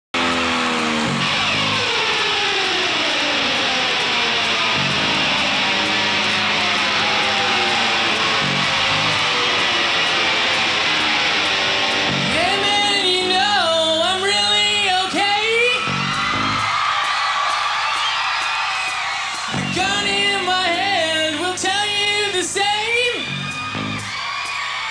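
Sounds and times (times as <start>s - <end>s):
low bass notes: 0.2s - 1.9s, 8.1s - 9.5s, 12.0s - 13.4s
punk rock band playing: 0.2s - 24.2s
person singing lead vocal: 12.1s - 16.0s, 19.5s - 23.9s.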